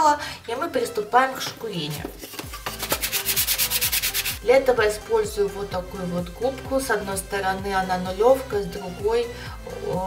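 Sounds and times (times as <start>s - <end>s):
sanding sponge rubbing cardboard: 2.8s - 4.4s.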